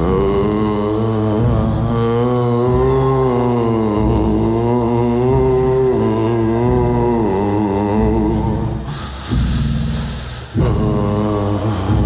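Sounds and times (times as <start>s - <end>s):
man singing long note: 0.0s - 12.0s.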